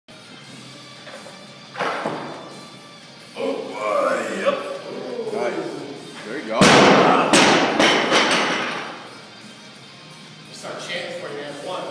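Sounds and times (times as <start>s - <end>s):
barbell plates knocking and rattling: 7.4s - 8.9s.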